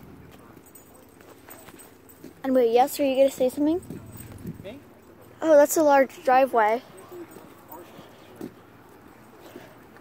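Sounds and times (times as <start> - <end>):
footsteps on asphalt: 6.6 - 10.0.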